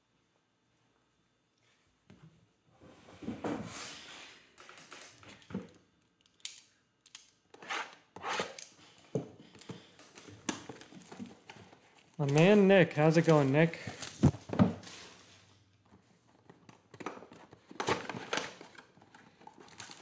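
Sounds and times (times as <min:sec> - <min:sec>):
plastic wrap crinkling and tearing: 0:17.6 - 0:20.0.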